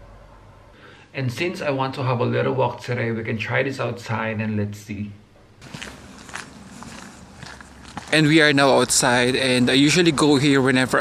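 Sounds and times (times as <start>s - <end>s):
soft footsteps outdoors: 5.4s - 11.0s.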